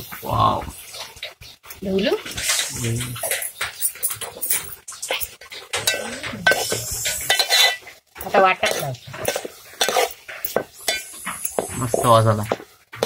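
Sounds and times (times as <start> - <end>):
metal spoon scraping a pot: 0.8 - 13.0.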